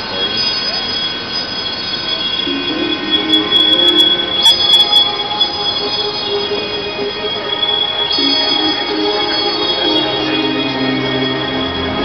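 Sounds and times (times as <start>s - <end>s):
held high chord over loudspeakers: 2.1s - 12.0s.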